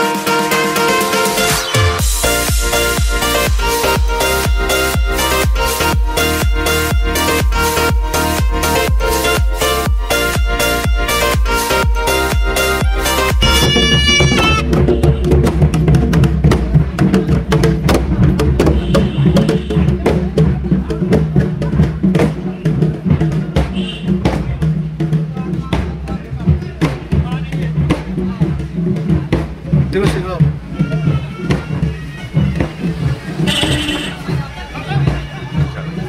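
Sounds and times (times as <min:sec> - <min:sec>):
high piping notes: 0:00.0 - 0:16.3
drums beaten in processional rhythm: 0:00.0 - 0:36.0.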